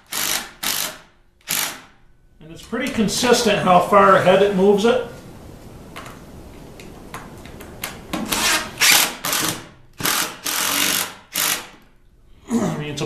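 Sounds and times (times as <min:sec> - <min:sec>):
impact driver bursts: 0:00.0 - 0:02.0, 0:08.2 - 0:11.8.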